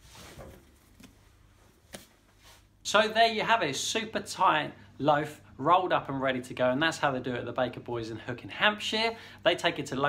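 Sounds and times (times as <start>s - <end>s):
hands rustling bread dough: 0.0s - 2.8s.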